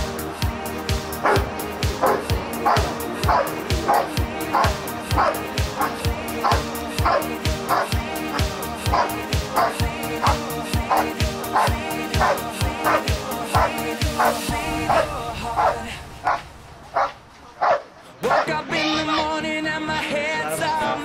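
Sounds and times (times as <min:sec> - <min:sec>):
pop song with steady beat: 0:00.0 - 0:16.6, 0:18.2 - 0:21.0
dog barking: 0:01.2 - 0:01.4, 0:02.0 - 0:07.9, 0:08.9 - 0:13.0, 0:13.6 - 0:15.0, 0:15.6 - 0:16.4, 0:17.0 - 0:18.5.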